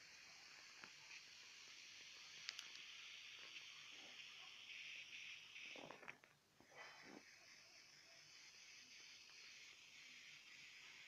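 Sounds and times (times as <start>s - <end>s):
air hissing from beach ball: 1.0s - 11.0s
faint clicks: 2.3s - 3.6s.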